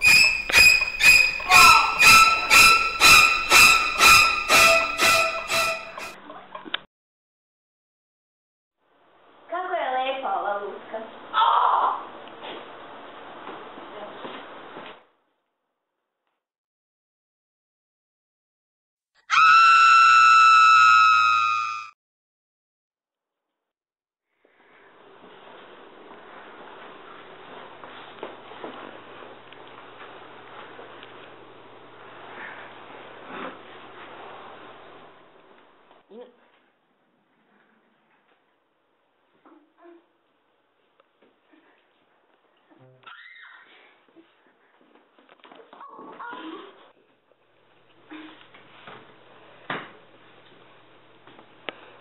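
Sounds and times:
woman screaming: 1.3s - 2.5s, 11.4s - 12.0s, 19.3s - 21.9s.

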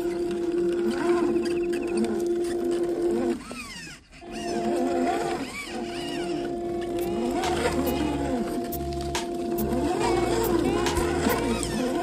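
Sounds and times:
toy car motor whining: 0.0s - 12.0s.

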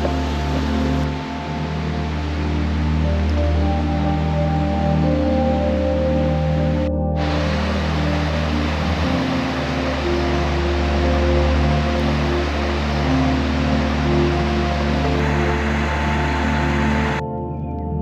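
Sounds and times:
stream rushing over rocks: 0.0s - 5.0s, 7.2s - 17.2s
soft ambient music: 0.0s - 18.0s.

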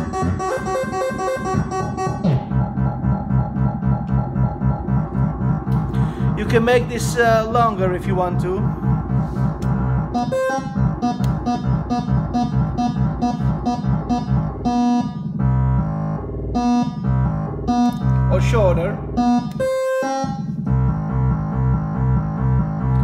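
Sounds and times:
modular synthesizer note pattern: 0.0s - 23.0s.

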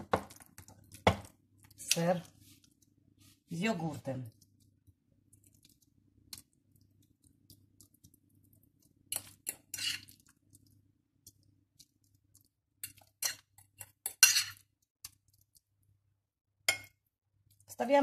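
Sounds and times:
fork scraping glass bowl: 9.1s - 10.2s, 12.8s - 14.6s.

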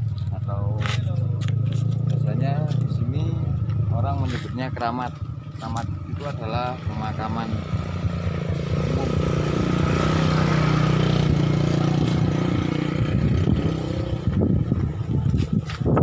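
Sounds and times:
vehicle engine passing: 0.0s - 16.0s.

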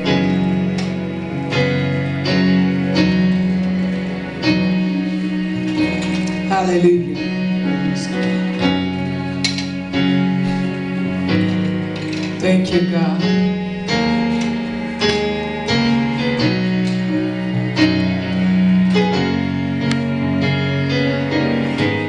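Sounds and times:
gospel keyboard chords: 0.0s - 22.0s.

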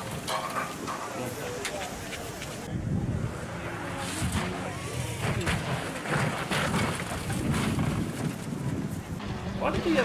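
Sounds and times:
wind buffeting microphone: 1.9s - 10.0s
rally car on gravel: 2.5s - 10.0s.

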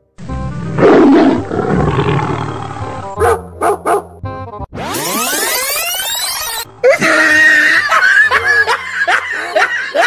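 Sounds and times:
loud animal roar: 0.5s - 3.2s.

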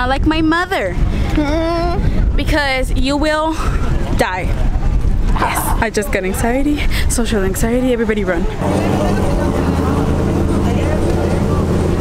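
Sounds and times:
faint voices: 3.5s - 12.0s
vehicle engine droning: 8.5s - 12.0s.

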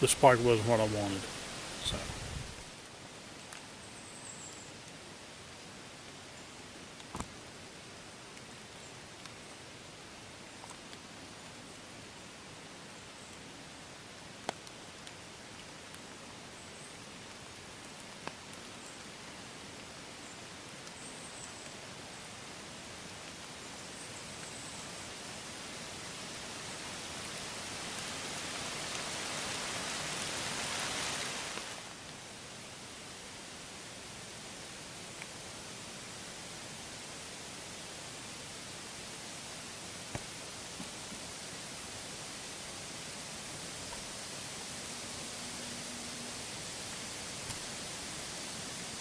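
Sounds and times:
steady woodland hiss: 0.0s - 49.0s
faint ticks in dry leaves: 1.2s - 49.0s
rushing noise: 43.4s - 49.0s.

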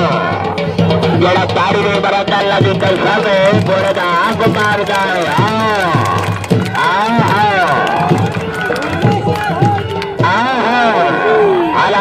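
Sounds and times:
music: 0.0s - 12.0s.

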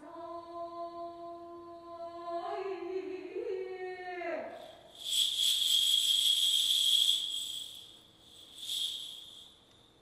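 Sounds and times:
small hand bells ringing: 4.6s - 9.6s.

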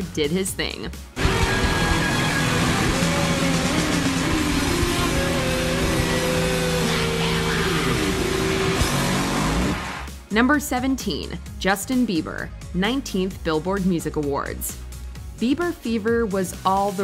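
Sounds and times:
distorted electric guitar: 1.2s - 10.1s
rock band playing: 1.2s - 10.1s.

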